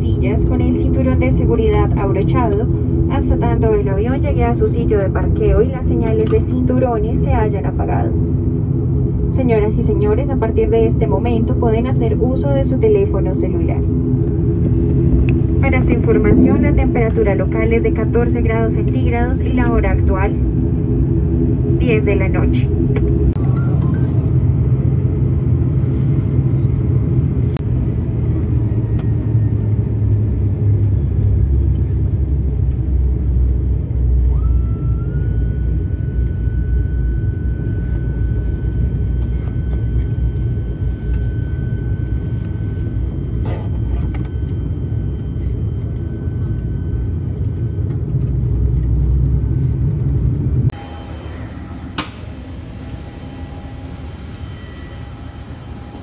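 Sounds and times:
aircraft cabin rumble: 0.0 - 56.0
thin high whine: 13.1 - 22.7, 50.7 - 56.0.

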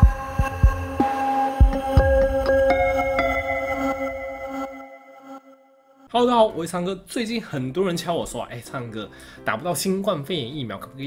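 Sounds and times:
heartbeat thumps: 0.0 - 1.0, 1.6 - 2.7
sustained synthesizer tones: 0.0 - 6.0.

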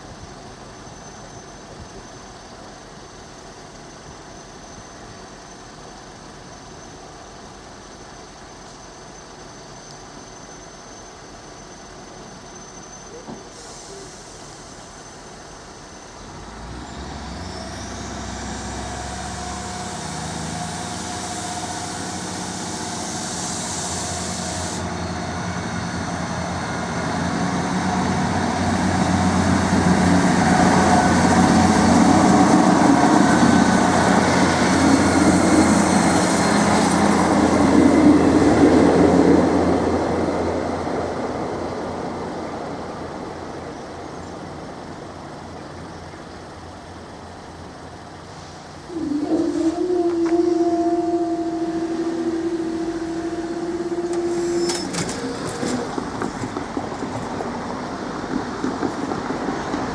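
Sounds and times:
diesel train engine: 0.0 - 59.9
train wheels on rails: 11.7 - 59.9.

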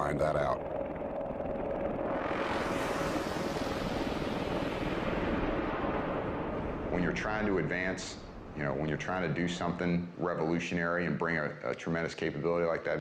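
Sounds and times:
aircraft rotor drone: 0.0 - 9.4
engine whine: 0.0 - 9.7.

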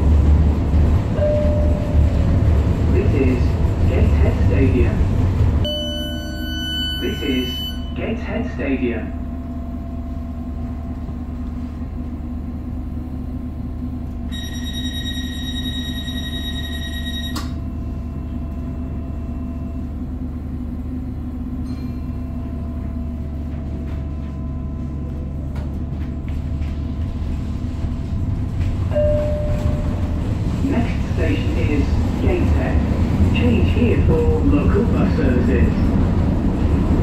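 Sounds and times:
train rumble from inside: 0.0 - 37.0
steady high tone: 5.6 - 8.2
click: 17.3 - 17.6.

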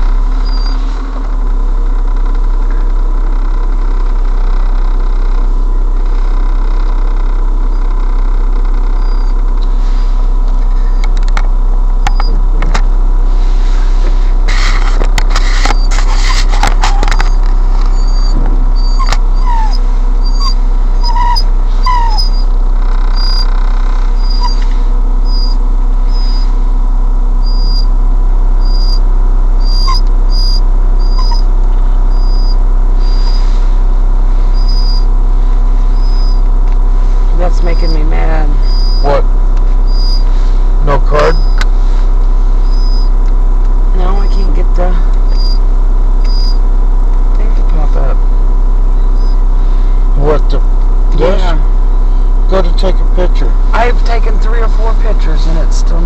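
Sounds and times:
car cabin low drone: 0.0 - 56.0
rustling clicking noise: 14.6 - 17.9.

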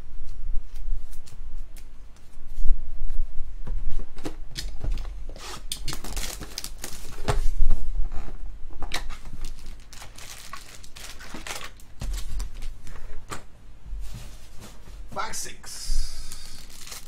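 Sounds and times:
foil packs crinkling: 5.5 - 7.4, 8.9 - 13.0, 16.2 - 17.0.

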